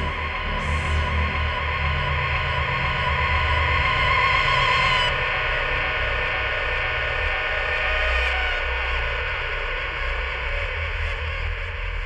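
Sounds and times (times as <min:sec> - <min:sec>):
electronic noise drone: 0:00.0 - 0:10.6.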